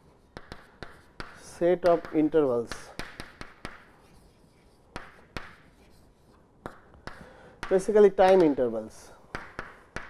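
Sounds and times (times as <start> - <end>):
chalk tapping on blackboard: 0.0 - 10.0.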